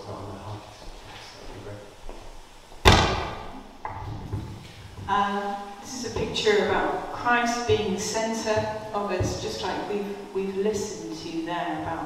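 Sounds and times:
microphone thump: 2.8s - 5.2s, 7.6s - 10.0s
soft microphone knock: 7.6s - 9.9s.

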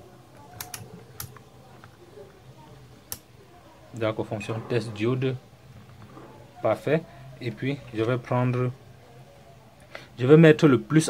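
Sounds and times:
rotary switch clicks: 0.6s - 1.4s.

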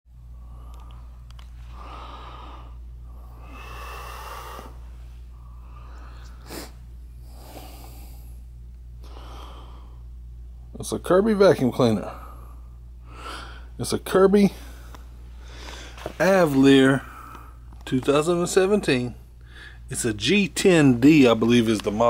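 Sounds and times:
steady low hum: 0.1s - 22.0s
person breathing: 0.2s - 10.2s, 12.0s - 13.8s, 14.5s - 16.2s, 17.0s - 17.7s, 19.4s - 19.9s
sharp sniff: 6.2s - 6.8s.

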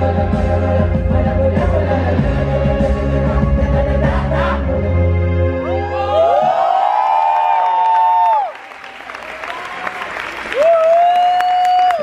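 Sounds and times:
audience applause and cheering: 5.6s - 12.0s.

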